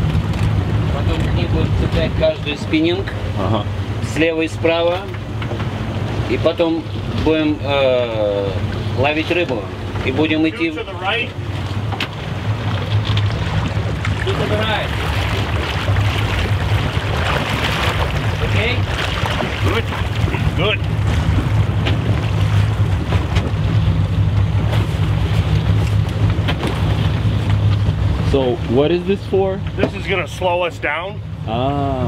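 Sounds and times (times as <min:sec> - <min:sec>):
boat engine droning: 0:00.0 - 0:32.0
water rushing past hull: 0:00.0 - 0:32.0
wind buffeting microphone: 0:09.6 - 0:28.6.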